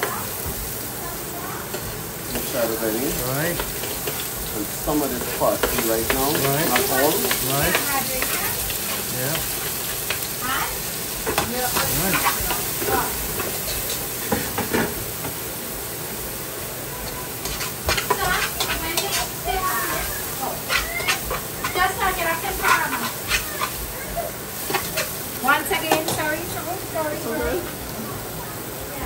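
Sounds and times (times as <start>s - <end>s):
garlic sizzling in hot oil: 0.0s - 29.0s
spoon scraping pot: 20.0s - 23.8s.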